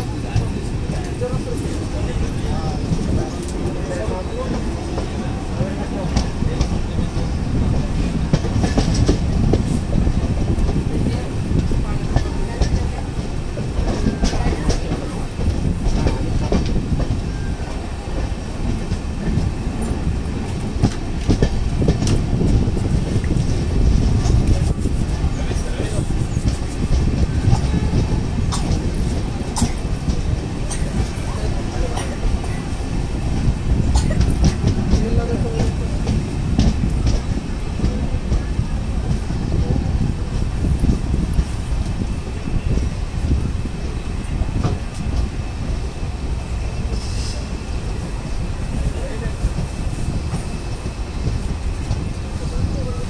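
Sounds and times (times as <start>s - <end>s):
train coach rumble: 0.0s - 53.0s.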